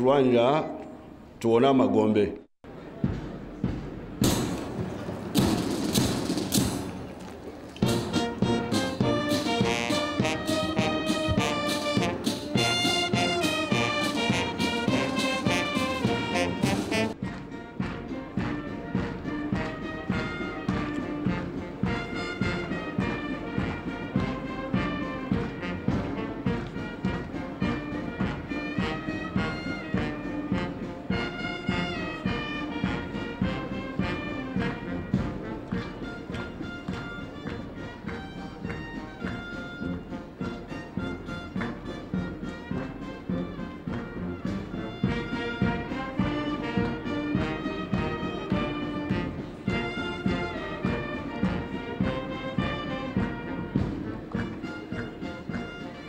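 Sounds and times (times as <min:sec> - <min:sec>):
military brass band playing: 0:03.6 - 0:56.0.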